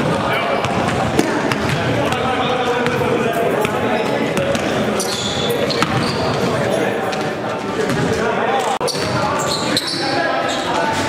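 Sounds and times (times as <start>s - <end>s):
basketball bouncing on gym floor: 0.6s - 3.0s, 3.6s - 6.2s.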